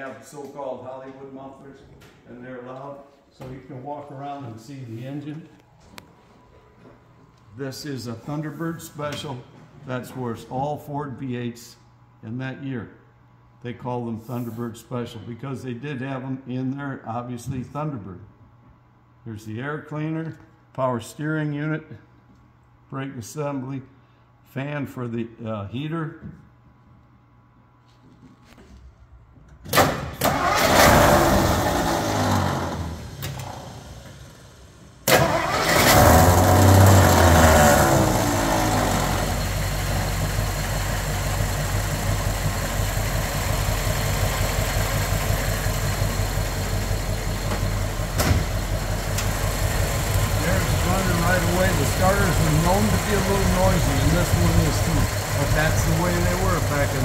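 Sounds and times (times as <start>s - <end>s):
car engine starting and idling: 29.7s - 57.0s.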